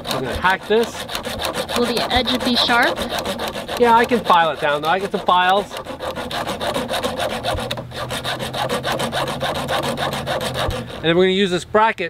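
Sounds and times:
hacksaw cutting metal: 0.0s - 11.2s.

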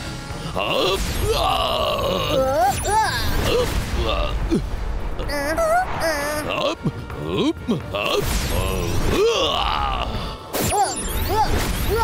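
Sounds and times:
cartoon character groaning yell: 1.2s - 3.4s.

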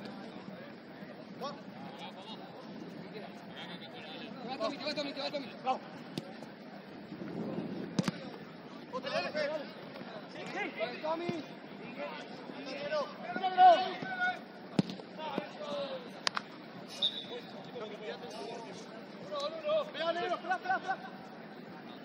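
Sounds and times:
ball kicks: 7.9s - 8.4s, 14.7s - 15.5s
players shouting: 8.0s - 16.3s.

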